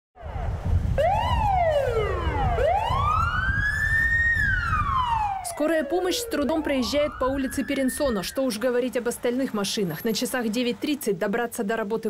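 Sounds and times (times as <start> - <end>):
ambulance siren wailing: 0.2 - 9.0.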